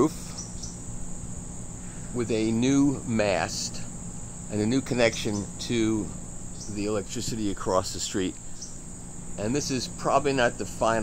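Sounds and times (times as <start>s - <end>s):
faint low hum: 0.0s - 11.0s
insects chirring: 0.0s - 11.0s.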